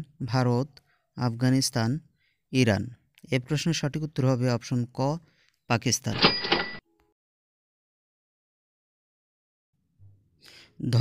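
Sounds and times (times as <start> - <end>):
short ring over a rattle: 6.2 - 6.8.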